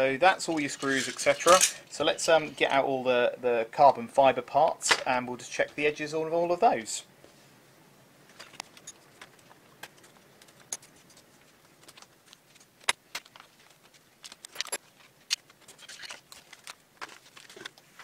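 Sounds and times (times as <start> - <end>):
plastic bags crinkling: 10.6 - 18.0.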